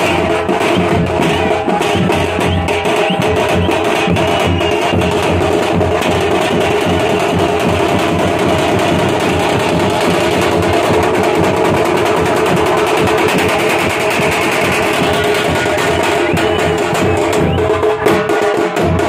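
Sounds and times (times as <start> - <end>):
fast bass drum beating: 0.0 - 19.0
festive band music: 0.0 - 19.0.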